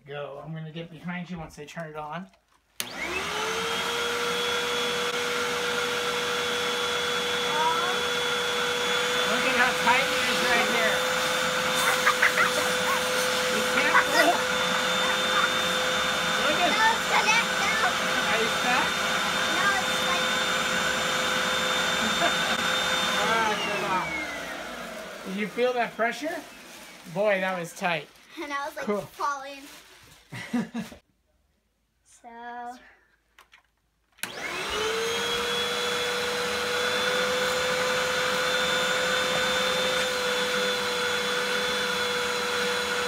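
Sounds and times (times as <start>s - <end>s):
vacuum cleaner whining: 2.8s - 28.9s, 34.2s - 43.0s.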